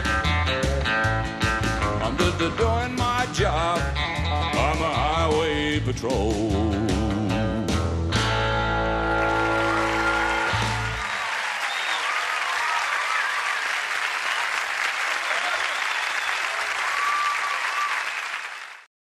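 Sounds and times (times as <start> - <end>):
country band held chord: 0.2 - 11.0
audience applauding and cheering: 8.8 - 18.9.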